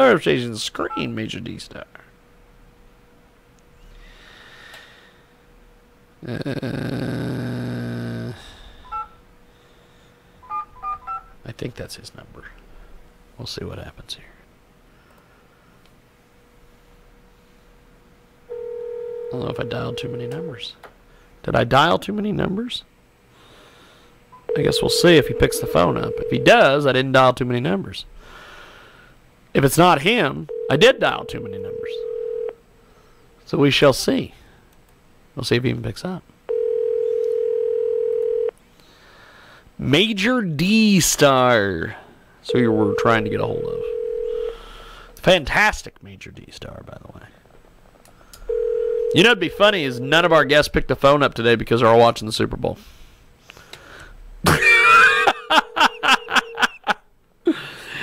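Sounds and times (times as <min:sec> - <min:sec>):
telephone keypad dialing tones: 0:08.9 - 0:09.1, 0:10.4 - 0:11.3
telephone ringback tone: 0:08.9 - 0:09.1, 0:18.5 - 0:20.5, 0:24.5 - 0:26.6, 0:30.5 - 0:32.6, 0:36.5 - 0:38.5, 0:42.5 - 0:44.6, 0:48.5 - 0:50.2.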